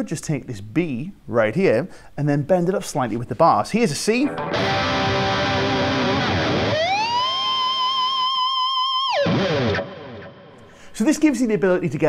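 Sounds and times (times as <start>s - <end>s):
distorted electric guitar harmonic: 4.2s - 10.6s.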